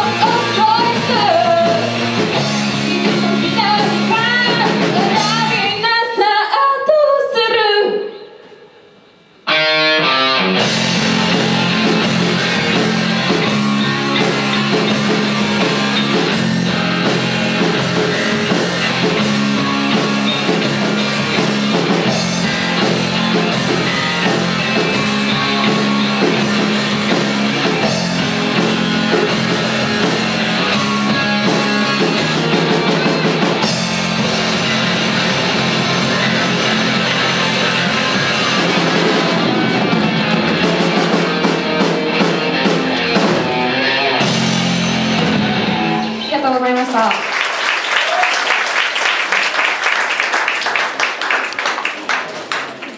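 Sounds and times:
bass guitar: 0:00.0 - 0:05.8, 0:09.5 - 0:46.6
drum kit: 0:00.0 - 0:05.9, 0:09.6 - 0:46.3
electric guitars: 0:00.0 - 0:05.9, 0:09.4 - 0:47.1.

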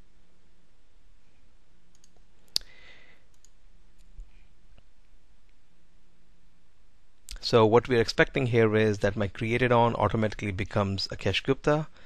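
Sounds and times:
faint room hum: 0:00.0 - 0:12.0
computer mouse click: 0:01.9 - 0:02.7, 0:03.3 - 0:04.2.

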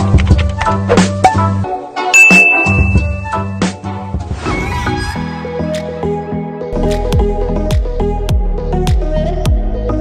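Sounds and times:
background music with a beat: 0:00.0 - 0:04.2, 0:05.3 - 0:10.0
high steady ding: 0:02.2 - 0:03.7.

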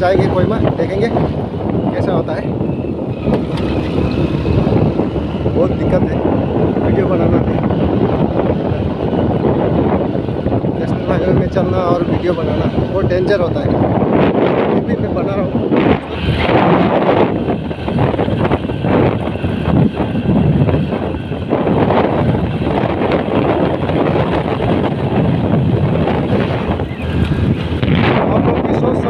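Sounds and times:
motorcycle engine and road noise: 0:00.0 - 0:29.0
wind buffeting microphone: 0:00.0 - 0:29.0.

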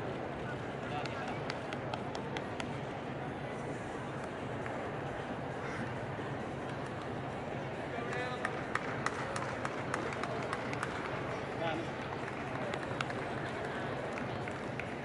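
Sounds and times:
crowd murmuring: 0:00.0 - 0:15.0
hand claps: 0:01.0 - 0:02.8, 0:08.0 - 0:15.0.

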